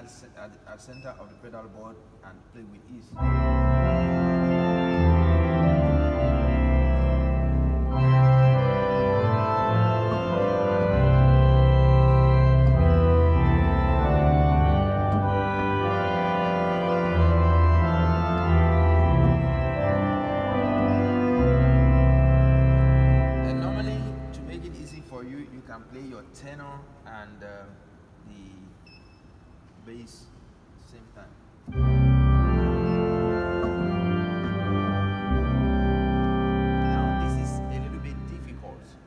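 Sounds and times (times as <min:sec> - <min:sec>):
church organ chords: 0:03.0 - 0:25.7, 0:31.6 - 0:39.0
deep organ pedal bass notes: 0:03.1 - 0:25.8, 0:31.7 - 0:39.0.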